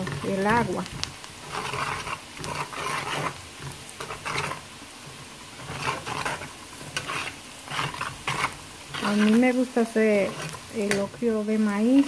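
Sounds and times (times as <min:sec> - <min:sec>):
metal spoon scraping a pot: 0:00.0 - 0:00.7, 0:01.4 - 0:12.0
vegetables sizzling in oil: 0:00.0 - 0:12.0.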